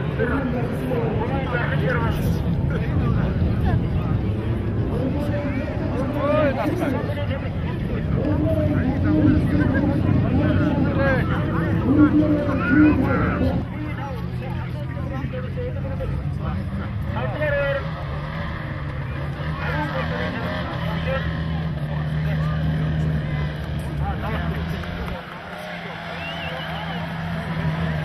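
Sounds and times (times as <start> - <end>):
people talking: 0.0 - 18.1, 18.8 - 28.0
car engine running: 0.0 - 28.0.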